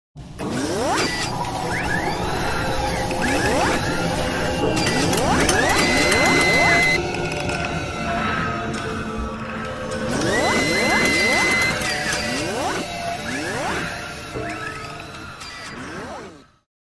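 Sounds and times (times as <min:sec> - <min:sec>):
held high tone: 0:01.4 - 0:07.2.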